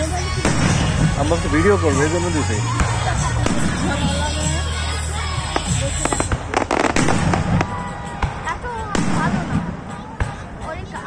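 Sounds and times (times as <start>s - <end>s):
crackling firework bangs: 0.3s - 1.3s, 2.7s - 4.2s, 5.4s - 10.4s
firework shells bursting: 5.5s - 7.9s.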